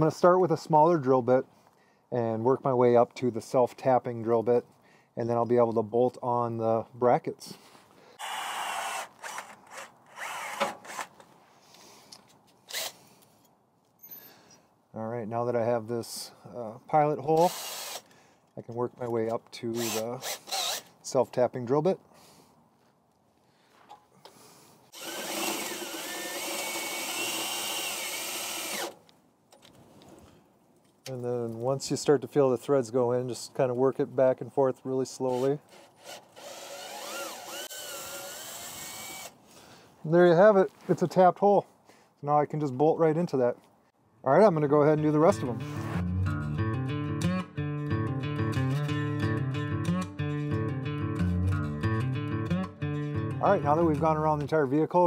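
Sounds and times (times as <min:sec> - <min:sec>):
cordless drill drilling into metal: 0:08.2 - 0:11.1, 0:12.7 - 0:13.0, 0:17.4 - 0:18.1, 0:19.8 - 0:20.9, 0:24.9 - 0:29.0, 0:35.3 - 0:39.4.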